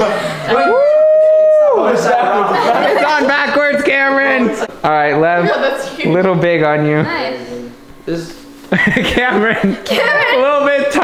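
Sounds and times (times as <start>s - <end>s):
long howl: 0.5s - 1.9s.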